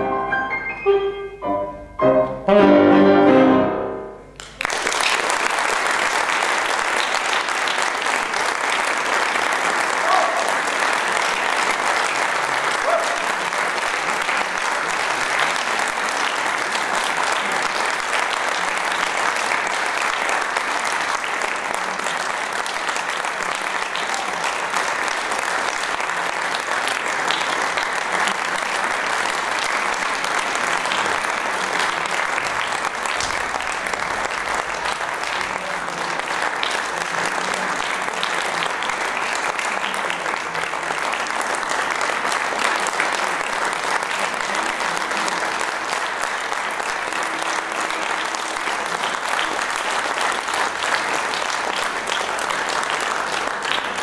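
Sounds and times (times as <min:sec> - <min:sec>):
concert audience applauding: 0:04.4 - 0:54.0.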